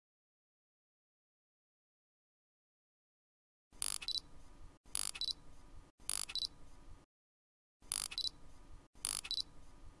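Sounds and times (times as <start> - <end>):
camera shutter double click: 3.8 - 4.2, 4.9 - 5.4, 6.1 - 6.5, 7.9 - 8.3, 9.0 - 9.5.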